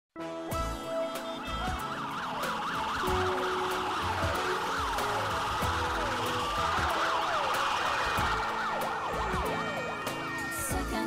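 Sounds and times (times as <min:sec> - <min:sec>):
sirens wailing: 0:00.7 - 0:10.9
low thumping beat: 0:01.5 - 0:09.9.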